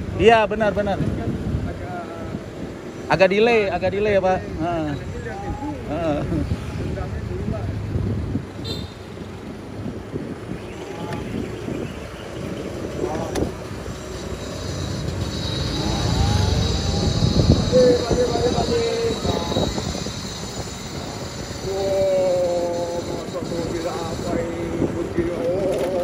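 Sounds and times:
wind and road rumble: 0:00.0 - 0:26.0.

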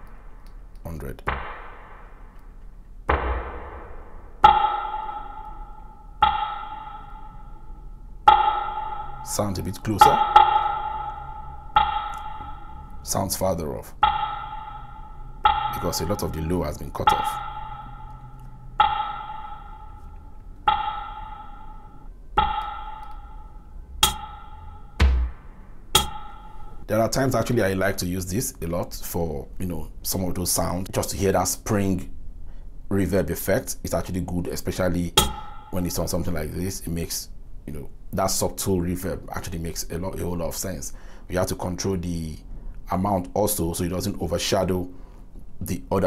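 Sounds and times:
noisy percussive hit with reverb: 0:00.0 - 0:20.1, 0:20.7 - 0:26.9, 0:35.2 - 0:36.0
low drum thump: 0:01.2 - 0:02.3, 0:03.1 - 0:04.8, 0:25.0 - 0:26.2
pitched note struck with reverb: 0:01.2 - 0:07.5, 0:20.7 - 0:26.9
sharp click: 0:24.0 - 0:24.3, 0:26.0 - 0:26.2.

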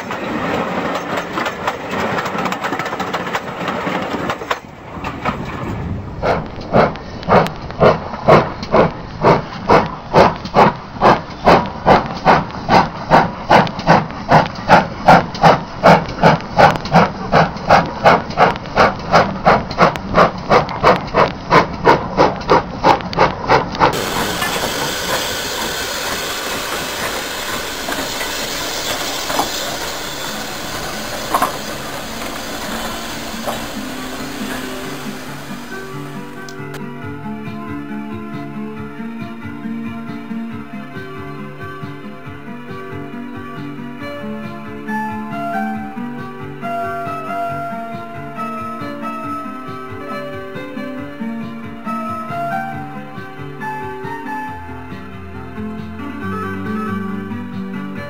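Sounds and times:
steam locomotive chuffing: 0:00.0 - 0:36.8
steady rushing hiss: 0:22.2 - 0:36.8.

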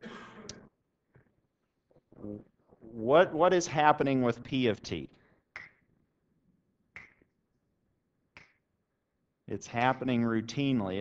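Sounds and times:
finger snaps: 0:05.6 - 0:05.9, 0:07.0 - 0:07.3, 0:08.3 - 0:08.7.

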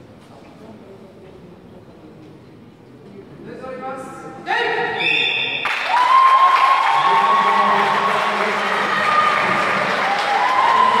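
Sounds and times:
crowd applauding: 0:05.6 - 0:11.0
crowd cheering: 0:05.6 - 0:11.0.

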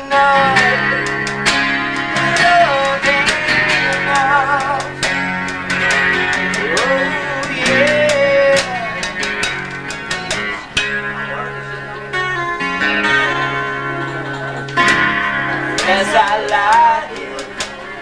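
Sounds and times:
lead guitar with bent notes: 0:00.0 - 0:18.0
live rock band playing: 0:00.0 - 0:18.0.

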